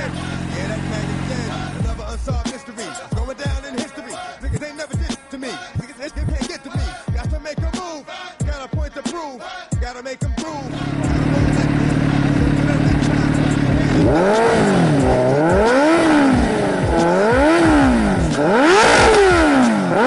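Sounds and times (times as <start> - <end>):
motorcycle engine idling: 0.0 - 2.5, 10.5 - 20.0
rapping over a heavy beat: 0.0 - 20.0.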